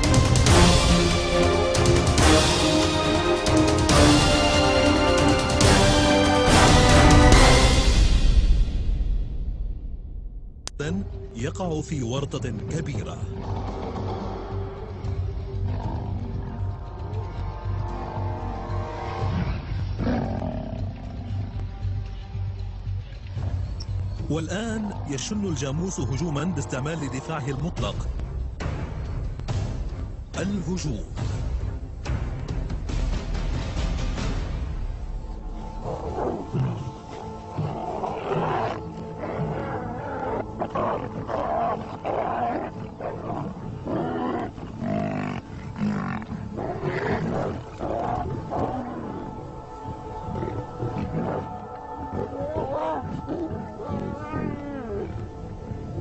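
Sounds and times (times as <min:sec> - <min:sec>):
background music: 0:00.0 - 0:56.0
lion roaring: 0:13.3 - 0:21.6, 0:35.7 - 0:55.8.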